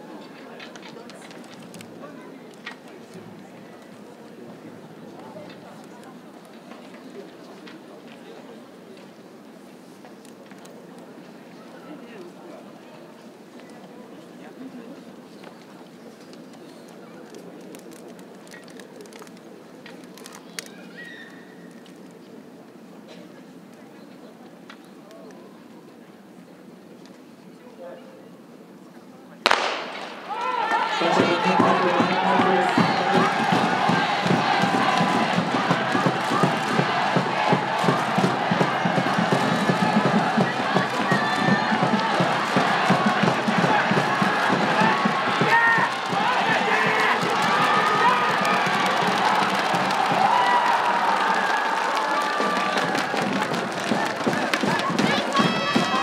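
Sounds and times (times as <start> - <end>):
distant voices chattering: 0.0 - 50.7
starter's pistol shot: 29.5 - 30.2.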